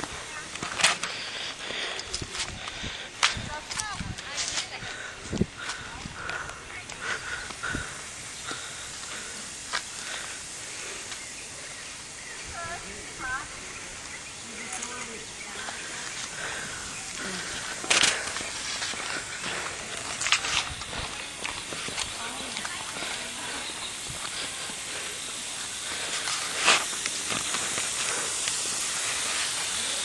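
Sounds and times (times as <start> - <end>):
indistinct voices: 0.0 - 30.0.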